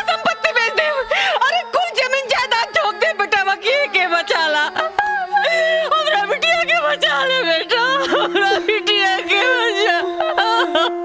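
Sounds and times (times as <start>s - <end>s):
high singing voice: 0.0s - 11.0s.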